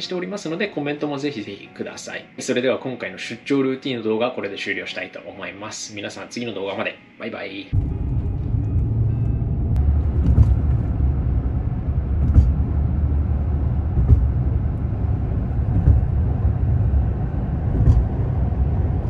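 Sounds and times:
car interior road rumble: 7.7 - 19.0.

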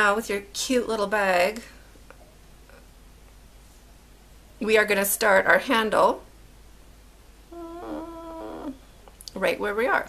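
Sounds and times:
woman humming: 7.5 - 8.8.

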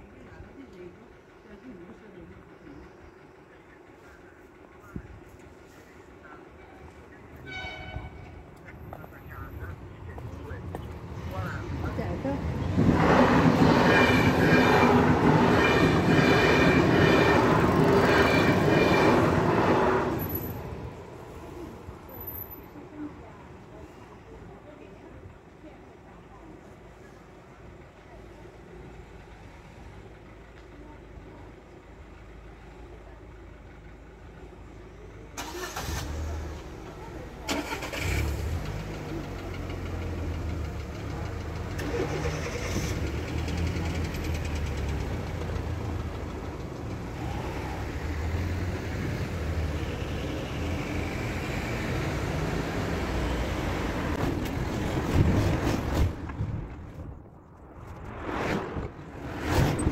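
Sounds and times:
cars driving over tracks: 0.0 - 23.8, 26.7 - 59.9.

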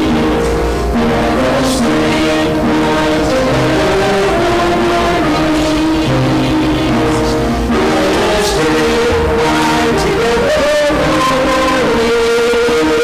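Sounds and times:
live worship band music: 0.0 - 13.0.

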